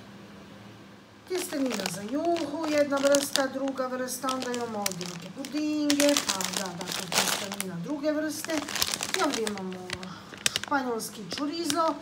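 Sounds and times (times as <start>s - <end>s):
people talking: 1.3s - 12.0s
plastic packets crinkling: 1.3s - 12.0s.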